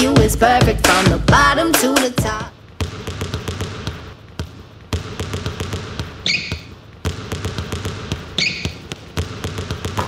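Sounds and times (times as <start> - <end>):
pop song singing: 0.0 - 2.5
sharp knocks and thumps: 2.8 - 10.0.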